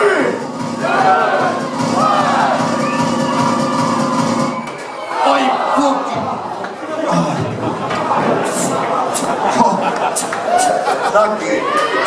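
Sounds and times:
loud music: 0.0 - 11.0
audience yelling and cheering: 0.0 - 12.0.

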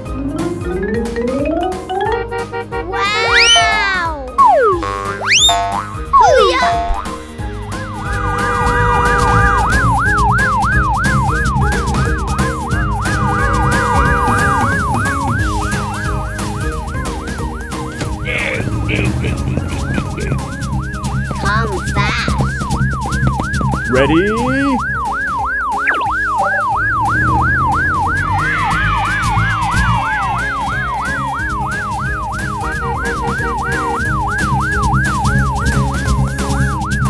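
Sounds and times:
cartoon sliding pitch effects: 1.4 - 7.3, 21.3 - 22.5, 25.8 - 31.3
cartoon siren sweeping: 2.1 - 7.3, 8.9 - 37.0.

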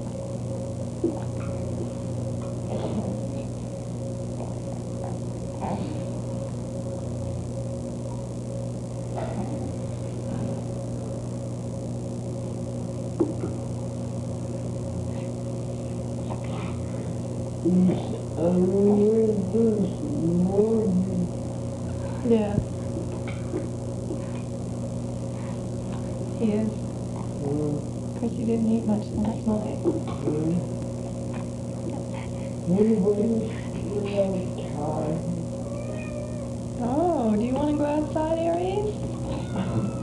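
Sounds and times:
steady hum of constant tones: 0.0 - 40.0.

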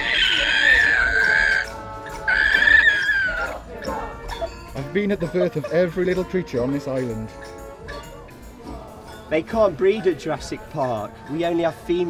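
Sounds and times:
high-pitched squealing cry: 0.0 - 3.6.

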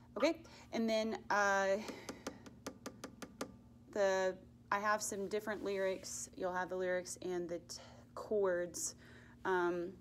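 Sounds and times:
woman speaking: 0.2 - 1.9, 4.0 - 10.0.

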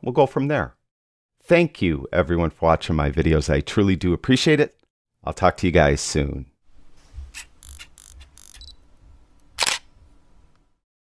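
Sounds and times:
soft camera clicks: 7.3 - 8.8, 9.5 - 9.9
loud camera shutter click: 9.6 - 9.9.

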